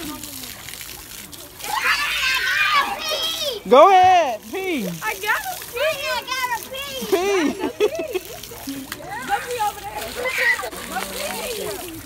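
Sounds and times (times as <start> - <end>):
children calling out: 1.5 - 3.7, 5.0 - 12.0.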